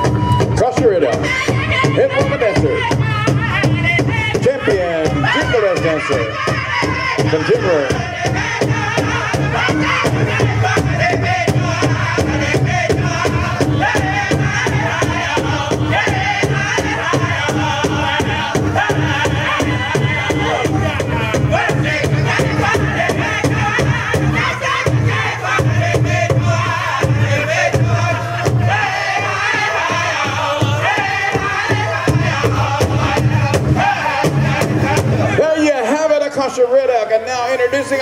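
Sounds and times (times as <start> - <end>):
large drum beating: 0.0 - 35.6
group singing in unison: 0.0 - 36.0.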